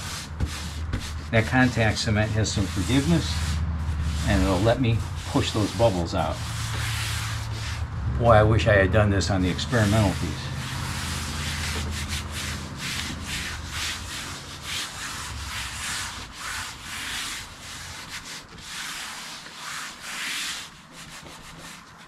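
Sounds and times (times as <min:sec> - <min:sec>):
hands rubbing over vinyl: 0:00.0 - 0:07.9, 0:09.4 - 0:22.0.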